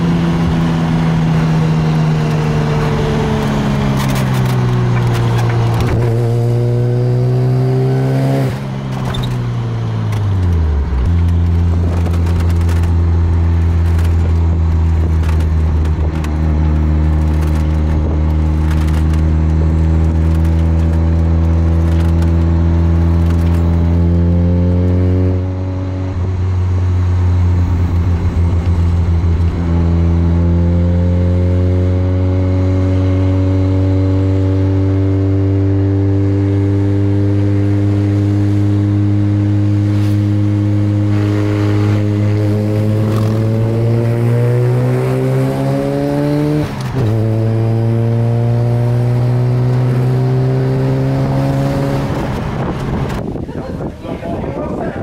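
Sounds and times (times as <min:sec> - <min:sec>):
wind rushing in window: 0:51.7 - 0:55.0.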